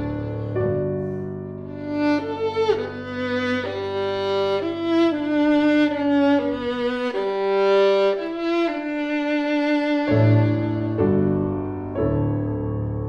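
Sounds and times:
violin holding long notes: 0.0s - 12.0s
grand piano chords: 0.0s - 13.0s.

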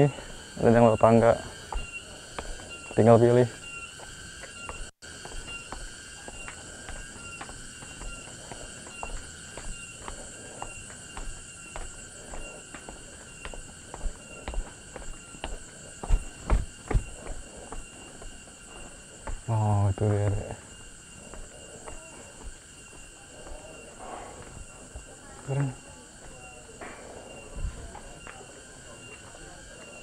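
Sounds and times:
footsteps on paved path: 0.0s - 30.0s
insect chorus buzzing: 0.0s - 30.0s
heavy thuds: 7.8s - 19.5s.

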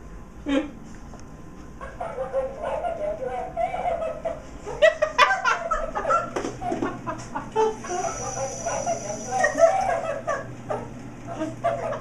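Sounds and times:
toy bird calls through speaker: 7.8s - 9.7s.

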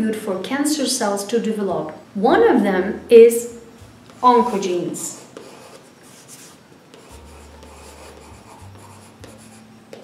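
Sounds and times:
chalk scratching on chalkboard: 4.2s - 10.0s.

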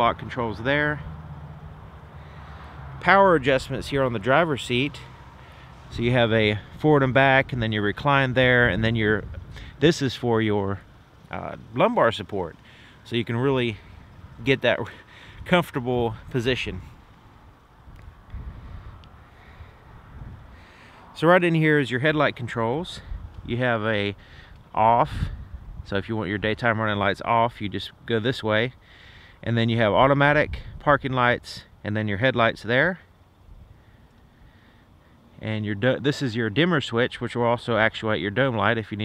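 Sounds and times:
faint clicks: 34.0s - 34.3s.

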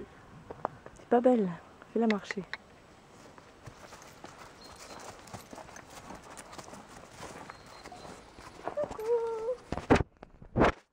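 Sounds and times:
pony hooves walking on grass: 0.4s - 9.9s.

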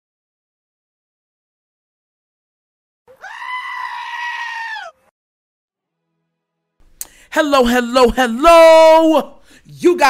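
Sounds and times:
high-pitched held cry: 3.1s - 5.1s.

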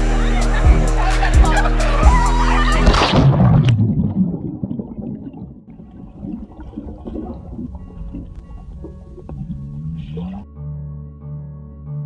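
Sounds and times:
underwater churning water and bubbles: 2.8s - 10.4s.

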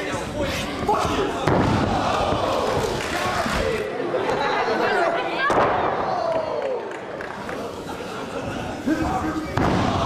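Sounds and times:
commentary voices: 0.0s - 5.6s
crowd noise: 0.0s - 10.0s.

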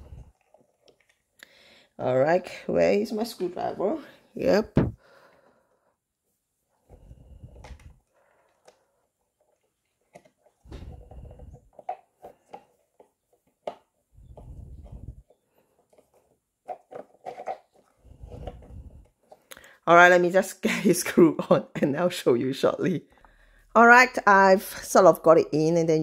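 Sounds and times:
screwdriver grinding and creaking: 0.0s - 1.3s, 6.9s - 19.5s.

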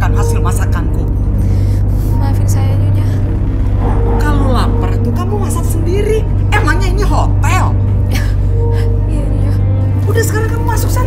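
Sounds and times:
people talking: 0.0s - 1.1s, 4.2s - 7.8s, 9.1s - 11.0s
dramatic background music: 0.0s - 11.0s
low drone: 0.0s - 11.0s.

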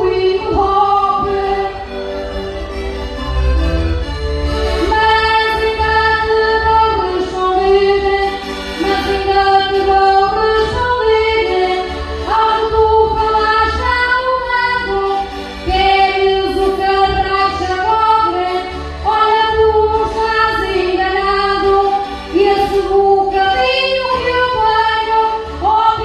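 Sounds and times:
woman singing into a microphone: 0.0s - 1.9s, 4.8s - 26.0s.

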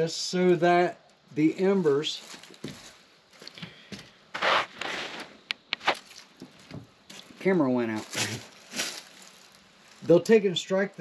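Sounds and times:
scuffing rustle: 1.6s - 10.3s.

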